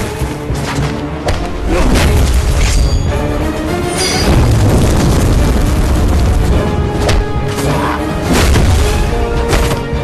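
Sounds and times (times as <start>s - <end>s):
dramatic film score: 0.0s - 10.0s
deep booms and crashing impacts: 4.2s - 7.3s.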